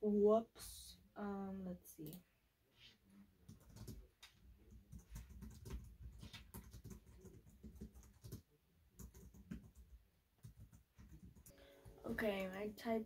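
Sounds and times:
faint keyboard typing: 0:03.4 - 0:12.8.

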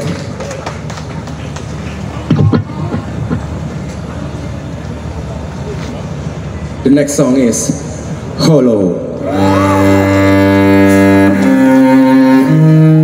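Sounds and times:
faint crowd noise: 0:00.0 - 0:13.0
sound system hum: 0:09.0 - 0:13.0.

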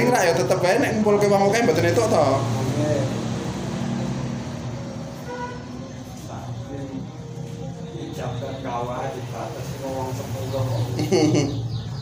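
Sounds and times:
vehicle engine humming: 0:00.0 - 0:12.0
faint voices: 0:05.2 - 0:11.7.

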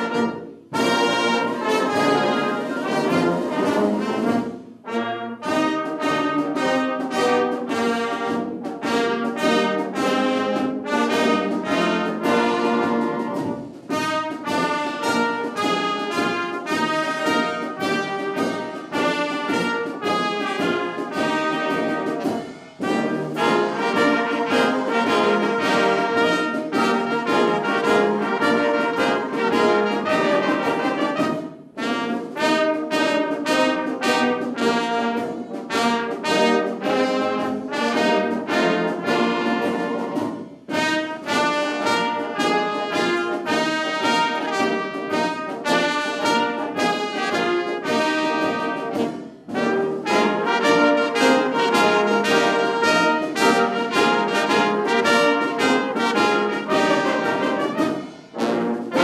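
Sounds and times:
wind band playing: 0:00.0 - 0:59.0.

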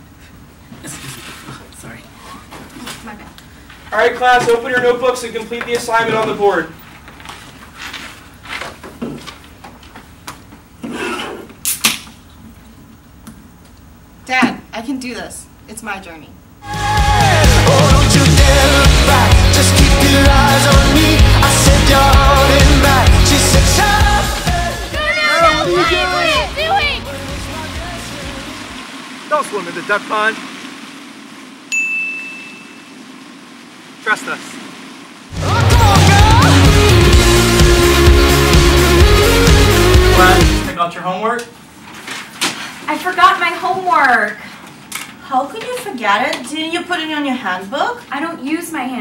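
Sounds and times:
paper pages rustling: 0:06.8 - 0:10.2, 0:41.8 - 0:42.9
high chime ding: 0:31.7 - 0:33.0.

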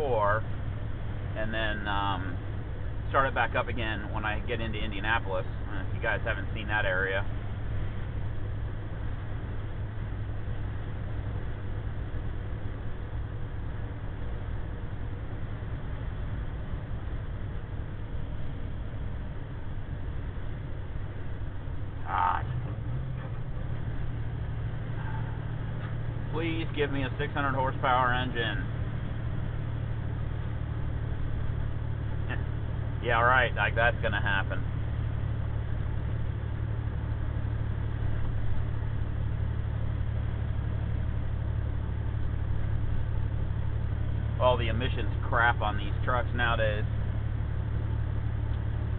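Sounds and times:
diesel truck engine drone: 0:00.0 - 0:48.9
road noise: 0:00.0 - 0:48.9.

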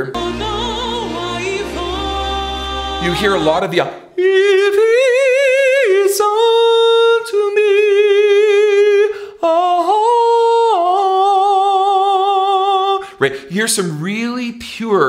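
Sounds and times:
man singing a cappella: 0:00.0 - 0:15.0.

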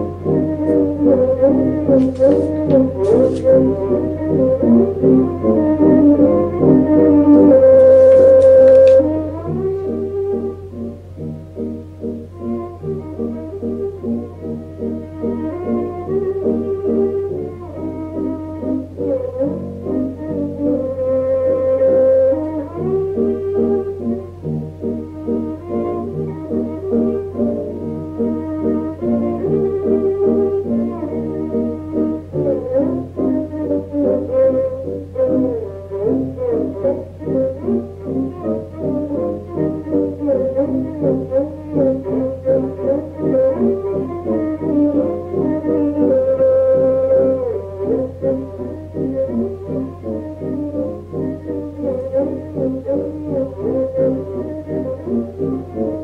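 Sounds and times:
klezmer ensemble playing dance tune: 0:00.0 - 0:21.7, 0:22.4 - 0:56.0.

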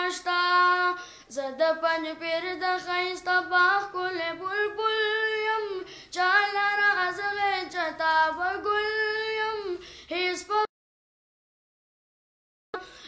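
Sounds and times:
boy singing into a microphone: 0:00.0 - 0:10.7.

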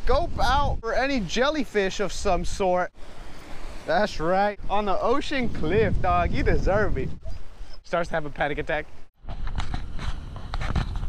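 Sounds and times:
wind on microphone: 0:00.0 - 0:01.3, 0:02.2 - 0:07.8, 0:09.2 - 0:11.0.

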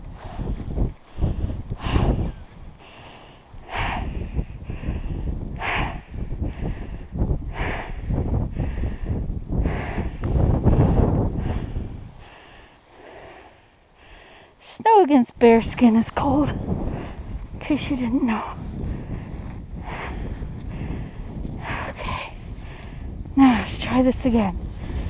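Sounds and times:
snow crunching: 0:00.0 - 0:04.0
heavy effortful breathing: 0:00.0 - 0:14.6, 0:16.5 - 0:23.2.

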